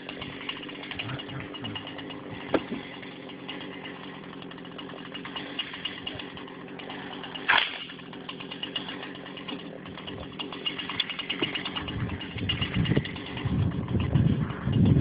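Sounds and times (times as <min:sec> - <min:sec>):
chainsaw idling: 0:00.0 - 0:15.0.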